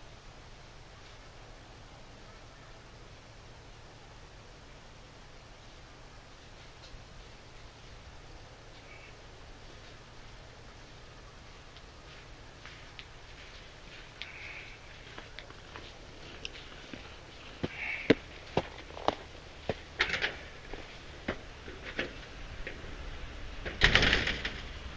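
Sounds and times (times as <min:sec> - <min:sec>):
footsteps crunching on snow: 0:06.3 - 0:22.4.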